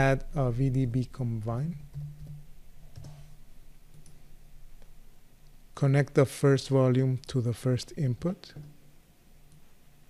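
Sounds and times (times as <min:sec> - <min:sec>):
low room tone hum: 0:00.0 - 0:10.0.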